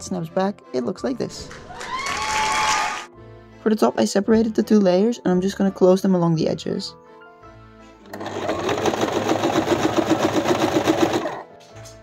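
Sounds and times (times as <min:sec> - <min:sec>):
sewing machine stitching: 0:08.0 - 0:11.5.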